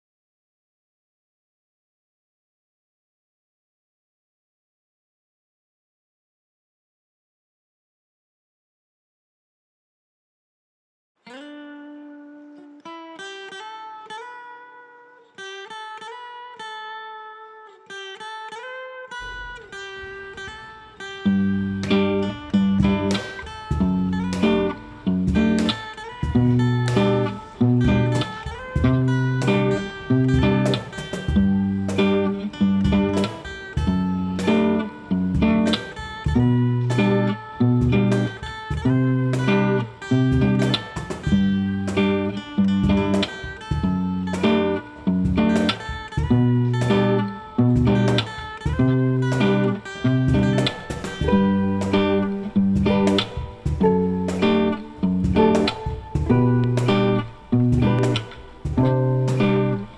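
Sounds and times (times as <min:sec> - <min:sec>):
acoustic guitars playing: 0:11.3 - 0:59.9.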